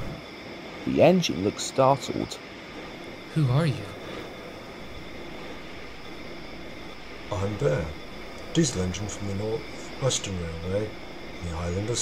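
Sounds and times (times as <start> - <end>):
background rumble and hiss: 0.0 - 12.0.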